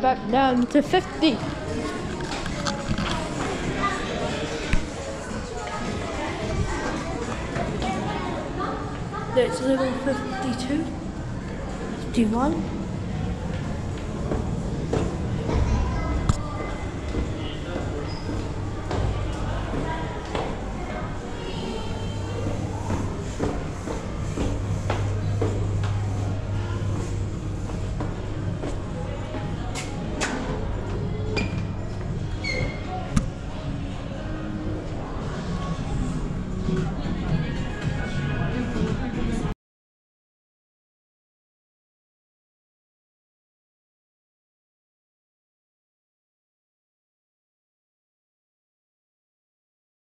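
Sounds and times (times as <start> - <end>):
indistinct voices: 0.0 - 39.5
footsteps on stairs and hard floor: 13.4 - 21.0, 22.2 - 30.0
low hum: 18.5 - 32.4.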